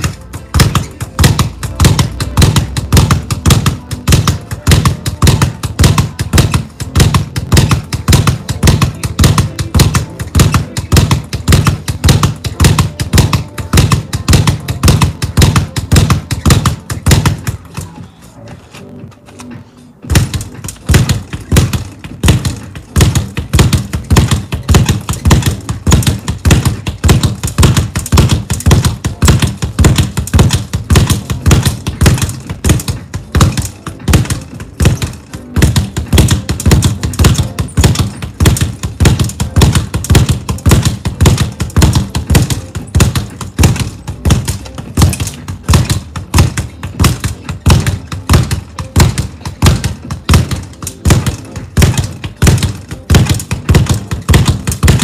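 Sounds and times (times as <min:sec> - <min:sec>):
speed bag rapid knocks: 0:00.0 - 0:18.0, 0:20.1 - 0:55.0.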